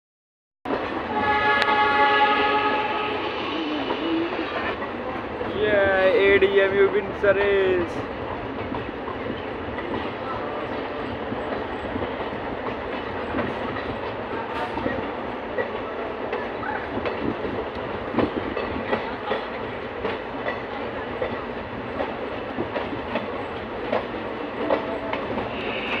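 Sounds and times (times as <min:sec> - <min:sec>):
diesel train running: 0:00.7 - 0:26.0
multi-tone train horn: 0:01.0 - 0:04.0, 0:25.3 - 0:26.0
wheels clacking over rail joints: 0:04.7 - 0:26.0.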